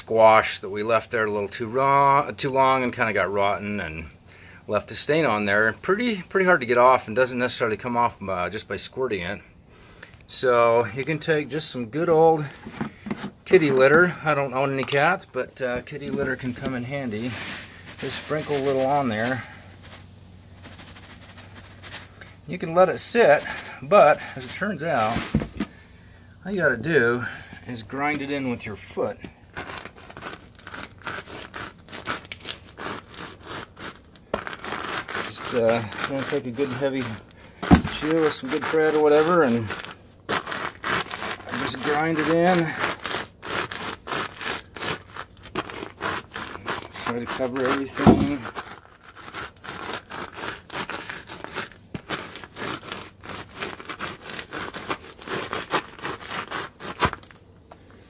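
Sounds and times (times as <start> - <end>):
boot grinding grit on concrete: 10.4 - 58.0
cat litter crunching under shoe: 12.4 - 25.8, 34.4 - 57.2.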